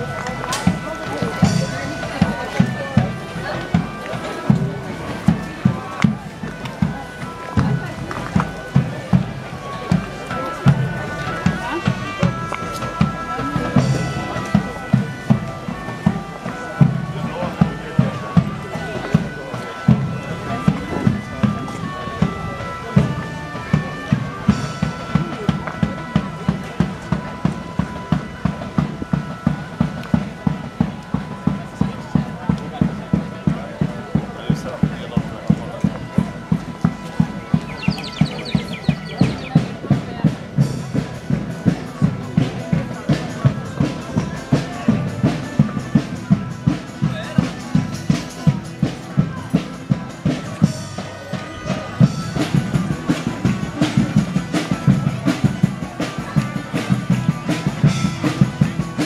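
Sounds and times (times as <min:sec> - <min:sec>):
bagpipe music: 0:00.0 - 0:59.0
voices of people: 0:00.0 - 0:59.0.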